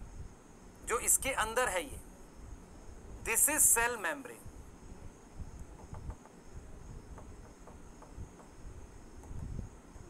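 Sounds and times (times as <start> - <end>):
soft taps: 7.2 - 8.5.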